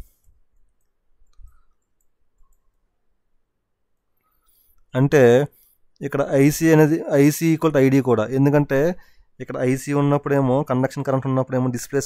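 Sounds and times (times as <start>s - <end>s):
computer mouse clicks: 0.0s - 2.9s.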